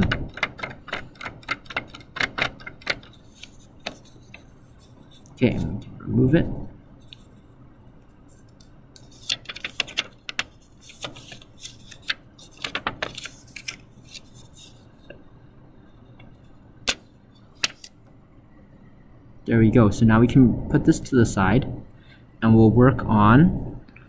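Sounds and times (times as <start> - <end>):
plastic sheet crinkling: 9.1 - 14.8.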